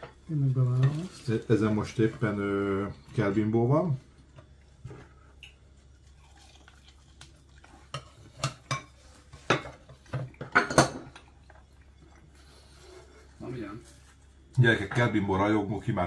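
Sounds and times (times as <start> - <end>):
plates and cutlery clinking: 7.7 - 12.0.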